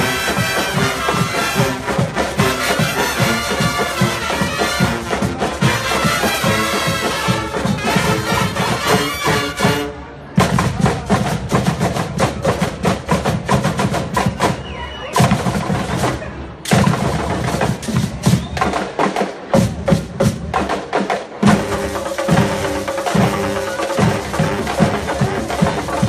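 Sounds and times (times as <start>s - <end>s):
band instruments: 0.0s - 26.0s
marching drum cadence: 0.0s - 26.0s.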